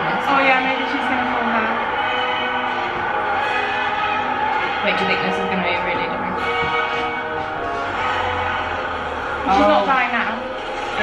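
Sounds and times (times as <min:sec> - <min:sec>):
drama soundtrack music: 0:00.0 - 0:11.0.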